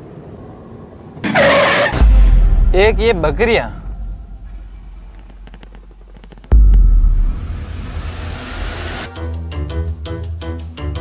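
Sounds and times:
sudden harsh noise: 1.2 - 9.1.

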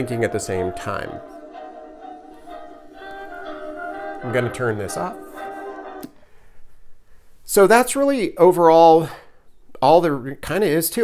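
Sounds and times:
music from small speakers: 0.0 - 6.2.

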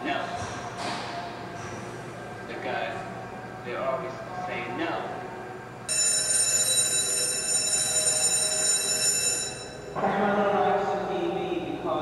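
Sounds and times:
high-pitched ringing tone: 5.9 - 10.0.

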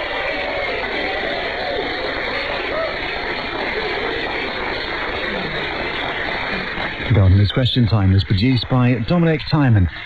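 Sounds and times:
studio audience applauding: 0.0 - 7.3.

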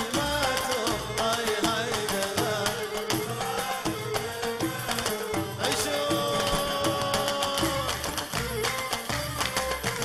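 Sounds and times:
hand drums beating: 0.0 - 10.0.

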